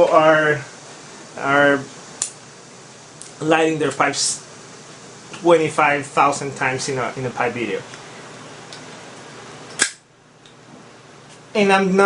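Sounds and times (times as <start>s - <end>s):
pipe lighter hissing: 9.7s - 10.0s
sharp lighter click: 9.7s - 10.0s.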